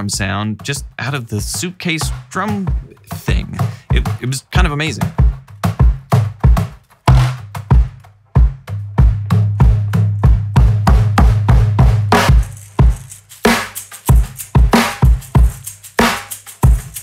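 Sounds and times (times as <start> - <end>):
suitcase drum set groove: 0.0 - 17.0.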